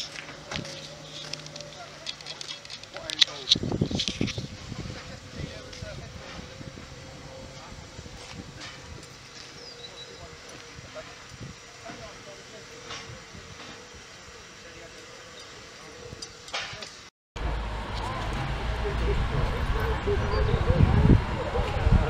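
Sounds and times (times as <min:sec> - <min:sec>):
people's voices in background: 0:00.0 - 0:17.1, 0:18.0 - 0:22.0
steam hissing from locomotive: 0:06.2 - 0:17.1
low rumble: 0:17.4 - 0:22.0.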